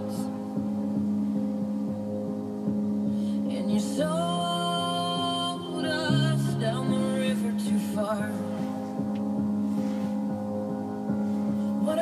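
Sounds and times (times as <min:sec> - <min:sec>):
music on car stereo: 0:00.0 - 0:12.0.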